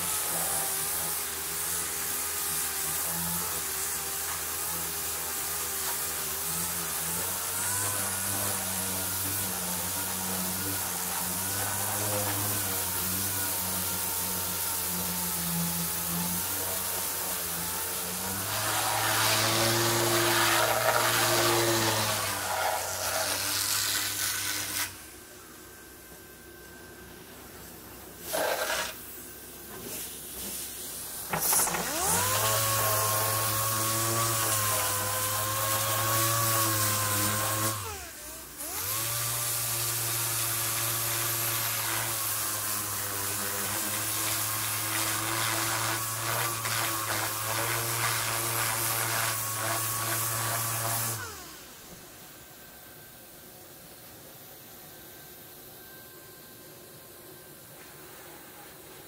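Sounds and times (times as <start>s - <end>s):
sanding pad hissing on metal: 0.0s - 25.2s, 27.2s - 51.9s
orbital sander motor whine: 0.0s - 29.0s, 31.0s - 53.1s.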